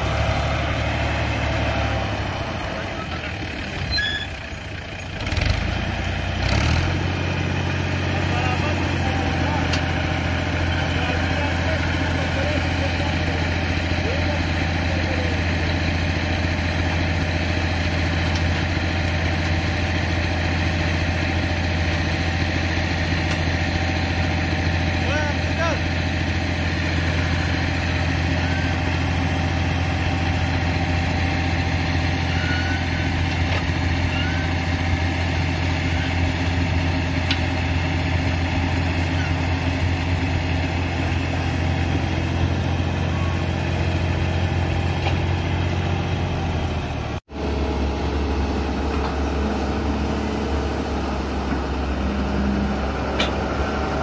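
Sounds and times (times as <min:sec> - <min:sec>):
tractor diesel engine running: 0:00.0 - 0:54.0.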